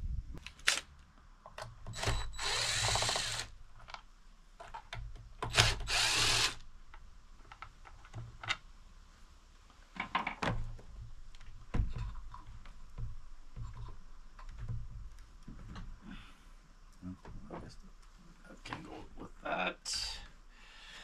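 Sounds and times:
impact driver backing out screws: 1.9 - 3.5.

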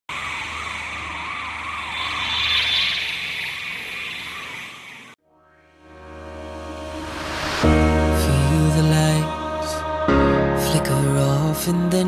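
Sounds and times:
wavering siren-like tone: 0.0 - 5.2.

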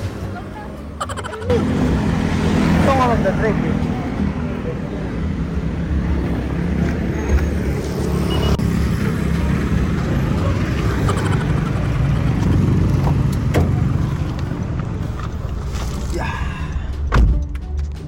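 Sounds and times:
motor vehicle rumble: 0.0 - 18.0.

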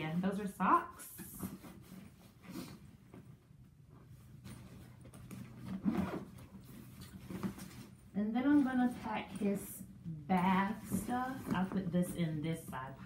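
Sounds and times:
fabric bag rustling: 4.0 - 9.7, 10.4 - 13.0.

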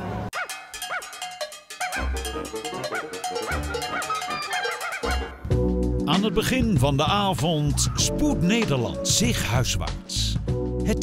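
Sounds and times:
street sound: 0.0 - 8.2
cartoon dog barking: 0.4 - 1.2, 2.8 - 5.4
light ringing percussion: 0.4 - 5.3.

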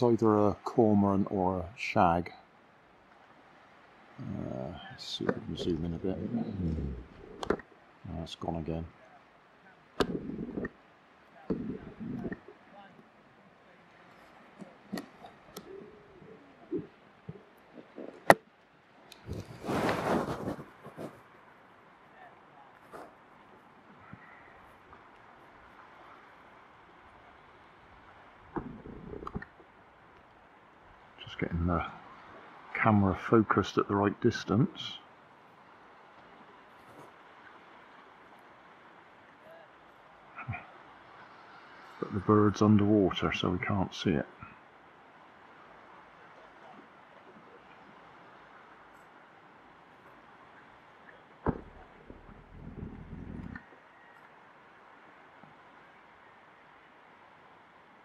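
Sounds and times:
faint hiss of calm sea shore: 0.0 - 58.0
faint voices: 4.2 - 10.7, 11.3 - 18.1
brief rustle: 19.2 - 21.4.

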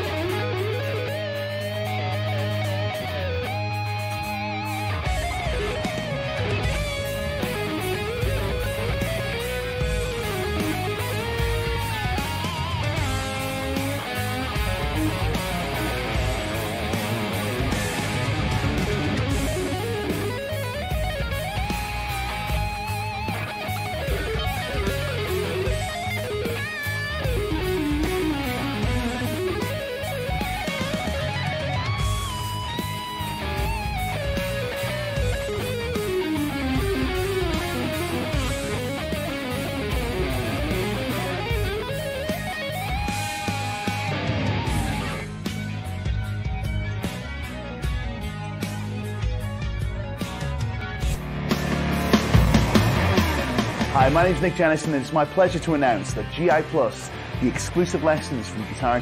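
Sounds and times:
electric guitar lead lines: 0.0 - 59.0
recorded song with steady beat: 0.0 - 59.0.

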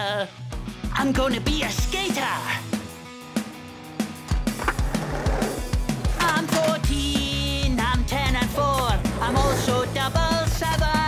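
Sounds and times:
skateboard wheels rolling: 4.3 - 6.8, 8.3 - 11.0.

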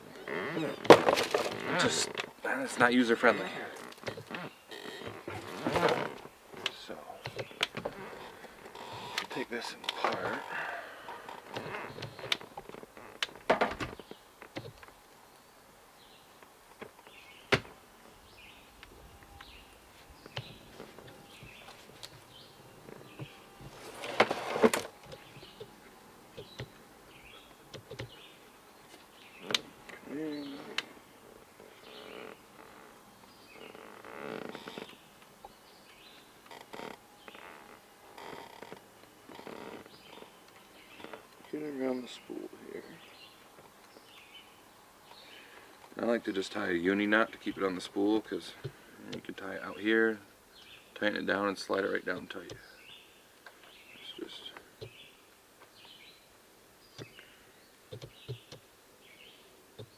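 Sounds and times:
birds chirping: 0.0 - 59.9.

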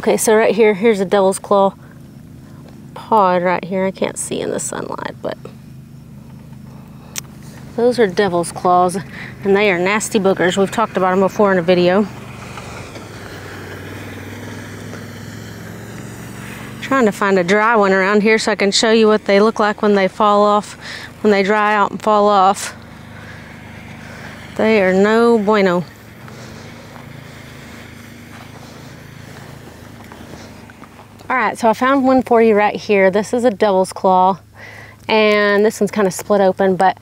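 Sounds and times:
vehicle engine running: 0.0 - 37.0.

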